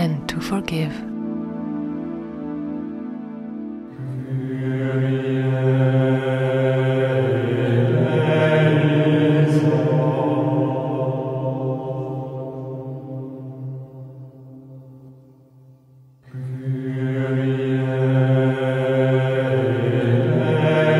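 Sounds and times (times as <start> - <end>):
low droning chanting voices: 0.7 - 20.9.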